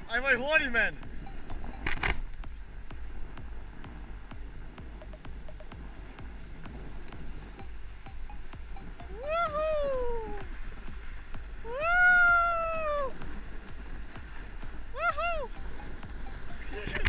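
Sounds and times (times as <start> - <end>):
person whooping: 9.1 - 10.5, 11.6 - 13.2, 14.9 - 15.6.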